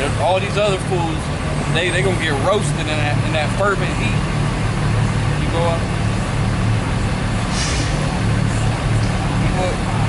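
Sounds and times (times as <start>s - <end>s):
heavy vehicle engine rumbling: 0.0s - 10.0s
short hiss: 7.5s - 8.2s.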